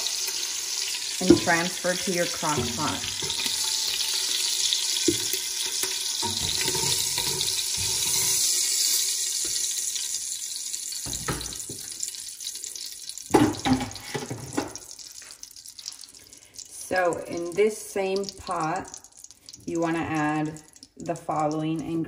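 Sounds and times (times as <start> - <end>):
oil and butter sizzling in a pot: 0.0 - 22.0.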